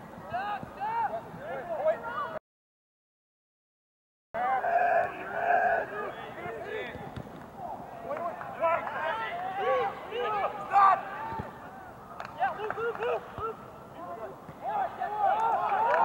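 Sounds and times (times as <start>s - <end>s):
players shouting: 4.4s - 16.0s.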